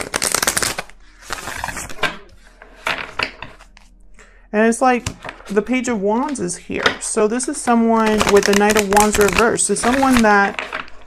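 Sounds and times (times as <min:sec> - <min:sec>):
cards flicking: 0:00.0 - 0:02.2
cards being shuffled: 0:00.0 - 0:03.9, 0:06.8 - 0:11.0
cards rustling: 0:00.0 - 0:03.9, 0:06.3 - 0:11.0.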